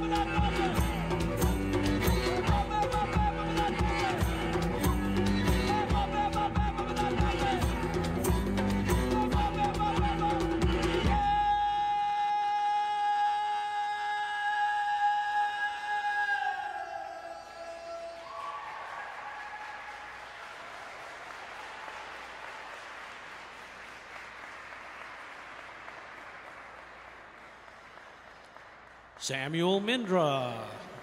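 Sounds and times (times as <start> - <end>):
audience applause: 17.3 - 31.0.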